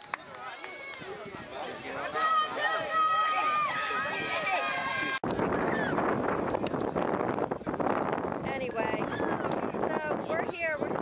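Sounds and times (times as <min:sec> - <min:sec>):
faint indistinct voices: 0:00.0 - 0:07.1
wind buffeting microphone: 0:00.2 - 0:11.0.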